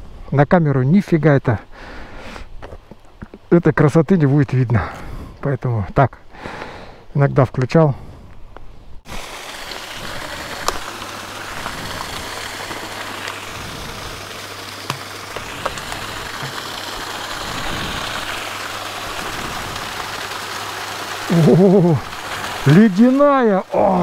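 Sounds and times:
water splashing onto rocks: 9.1s - 24.0s.

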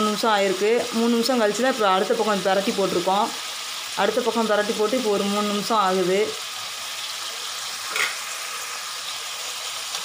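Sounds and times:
gravy simmering and sizzling: 0.0s - 10.0s.

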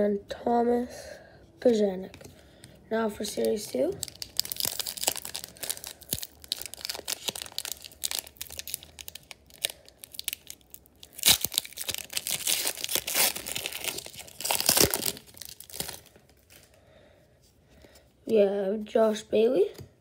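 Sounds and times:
plastic wrapper tearing and crinkling: 3.2s - 16.7s.

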